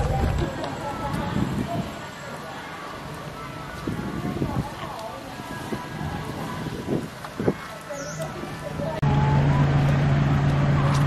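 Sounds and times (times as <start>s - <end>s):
faint voices of passers-by: 0.0s - 11.0s.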